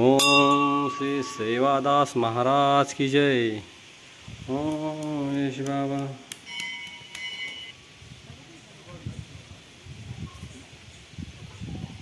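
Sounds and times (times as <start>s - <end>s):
metal bell ringing: 0.2s - 2.2s, 6.4s - 7.8s.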